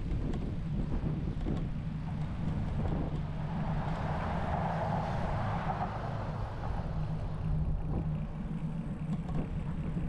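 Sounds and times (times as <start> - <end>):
bicycle tyres rolling on asphalt: 0.0 - 10.0
wind buffeting microphone: 0.0 - 10.0.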